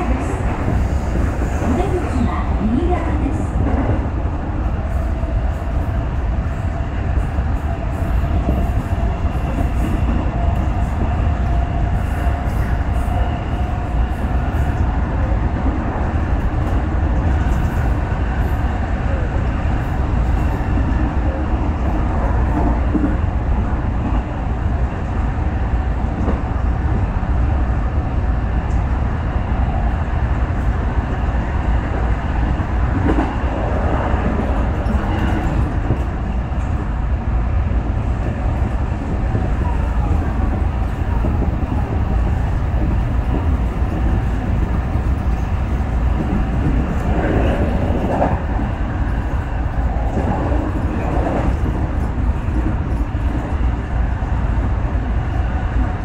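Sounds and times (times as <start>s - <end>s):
train wheels rumbling on rail: 0.0s - 56.0s.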